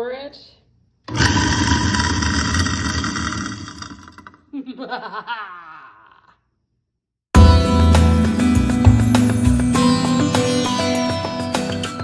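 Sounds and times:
food waste disposer grinding: 1.1 - 4.4
woman laughing: 4.5 - 6.4.

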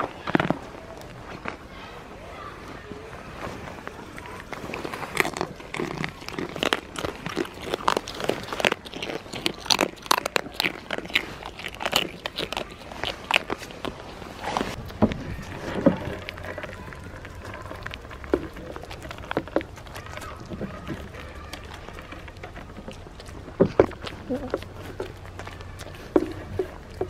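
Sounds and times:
goats nibbling and mouthing: 0.0 - 27.0.

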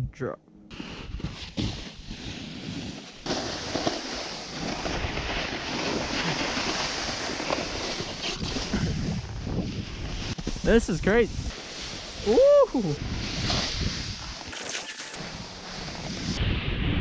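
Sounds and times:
snowboard scraping on snow: 0.7 - 17.0
wind on microphone: 7.4 - 14.5, 15.2 - 17.0.

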